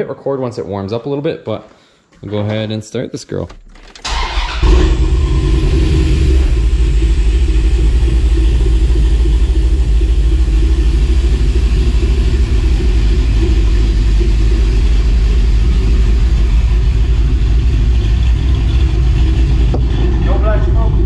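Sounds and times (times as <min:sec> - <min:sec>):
car engine idling loudly: 0:04.1 - 0:21.0.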